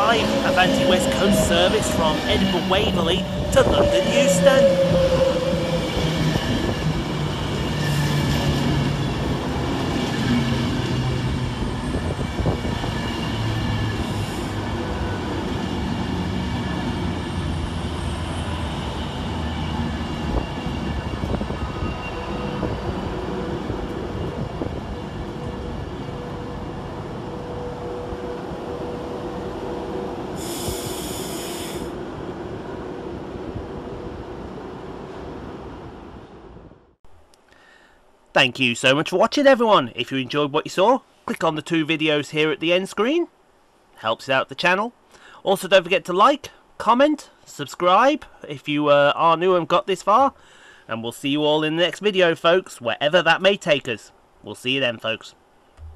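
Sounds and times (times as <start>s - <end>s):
electric train pulling in: 0.0s - 37.0s
wheels and brakes squealing: 11.8s - 25.2s.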